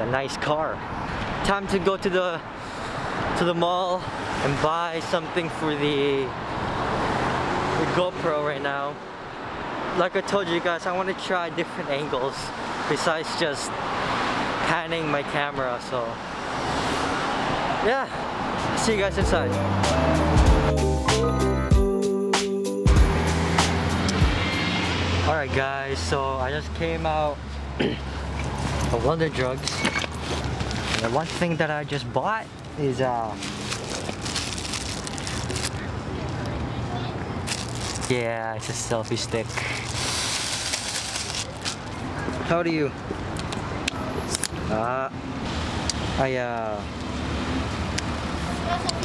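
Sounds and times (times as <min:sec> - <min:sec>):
road traffic: 0:00.0 - 0:21.7, 0:22.8 - 0:49.0
background music: 0:19.0 - 0:25.0.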